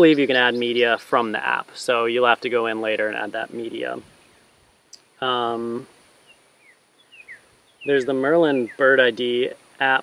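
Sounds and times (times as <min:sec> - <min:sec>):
bird chirps: 0:00.0 - 0:02.0, 0:03.0 - 0:10.0.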